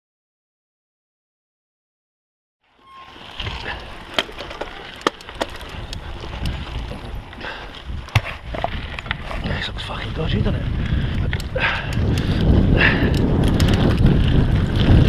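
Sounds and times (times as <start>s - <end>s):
bike tyres rumbling on dirt: 2.8s - 15.0s
bike rattling over bumps: 3.0s - 15.0s.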